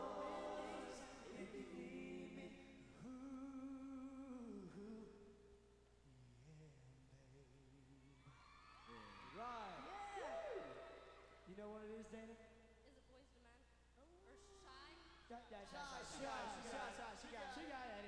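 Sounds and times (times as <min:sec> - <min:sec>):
male vocal group singing a cappella: 0:00.0 - 0:05.4, 0:15.6 - 0:18.0.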